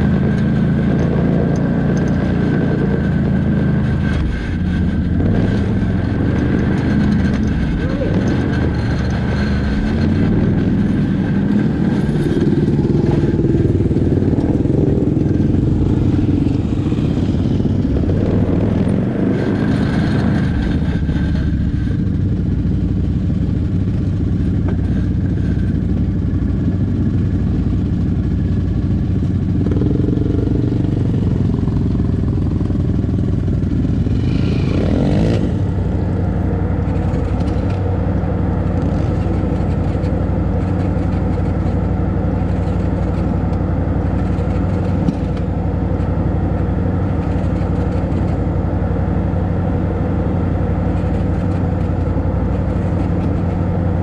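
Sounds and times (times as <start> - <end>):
vehicle engine idling: 0.0 - 54.0.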